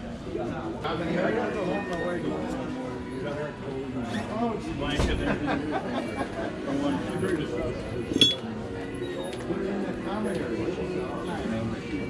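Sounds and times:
metal belt buckle clinking: 8.1 - 8.4.

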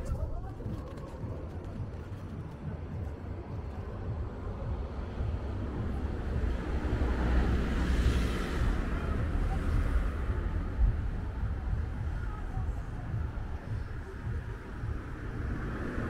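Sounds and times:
steady low traffic rumble: 0.0 - 16.0
vehicle passing: 3.3 - 16.0.

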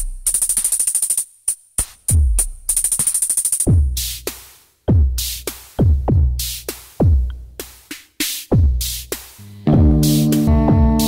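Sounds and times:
rapid hi-hat roll: 0.0 - 11.0
deep bass kick boom: 9.7 - 11.0.

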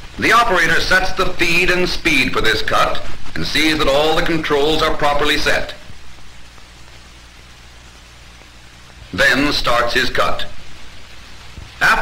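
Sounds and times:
film soundtrack hiss: 0.0 - 12.0
low mains hum: 0.0 - 12.0.

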